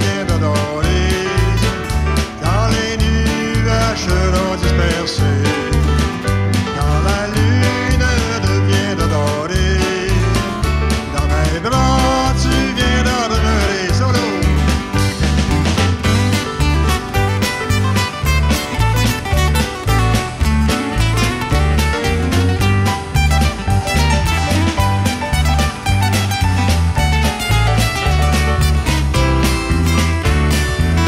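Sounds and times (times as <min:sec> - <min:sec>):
man singing: 0:00.0 - 0:15.2
electric bass: 0:00.0 - 0:31.0
keyboard: 0:00.0 - 0:31.0
strummed acoustic guitars: 0:00.0 - 0:31.0.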